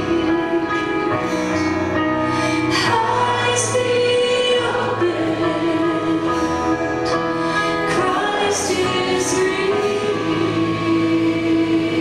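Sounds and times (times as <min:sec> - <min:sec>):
worship band playing: 0:00.0 - 0:12.0
voices singing together: 0:02.7 - 0:07.2, 0:07.8 - 0:12.0.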